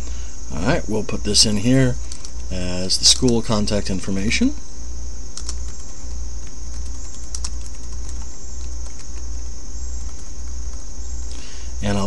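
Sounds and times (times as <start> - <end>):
low hum and hiss: 0.0 - 12.0
computer keyboard keystrokes: 2.1 - 2.5, 5.4 - 9.2.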